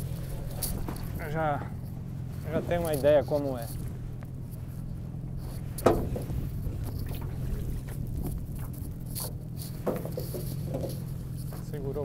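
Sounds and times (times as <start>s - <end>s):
outboard motor idling: 0.0s - 12.0s.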